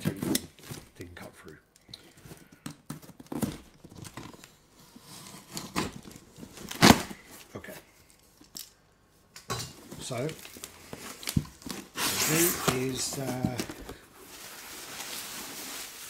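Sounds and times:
scraping and rustling: 9.8s - 16.0s.

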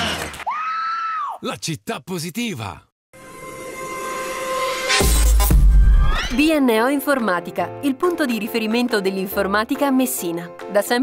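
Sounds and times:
horn-like tone: 3.2s - 6.0s.

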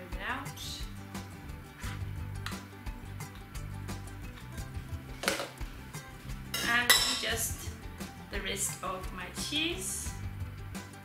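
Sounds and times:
light instrumental music: 0.0s - 11.0s.

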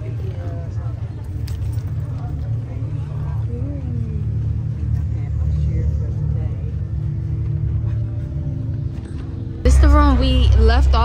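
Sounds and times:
faint background music: 0.0s - 11.0s
murmur of distant voices: 0.0s - 11.0s
steady low rumble: 0.0s - 11.0s.

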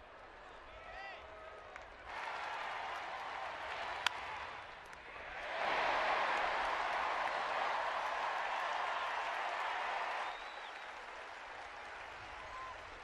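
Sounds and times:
crowd cheering and applauding: 2.0s - 13.0s.

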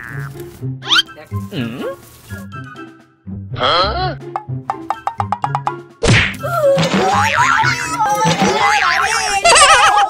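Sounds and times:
comedy background music: 0.0s - 10.0s.

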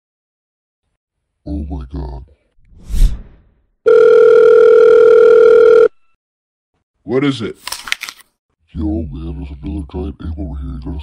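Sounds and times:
telephone ringback tone: 3.9s - 6.2s.

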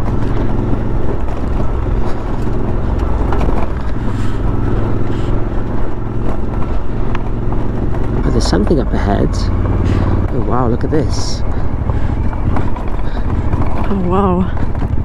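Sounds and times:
motorcycle engine drone: 0.0s - 15.0s
tyres rumbling over gravel: 0.0s - 15.0s.

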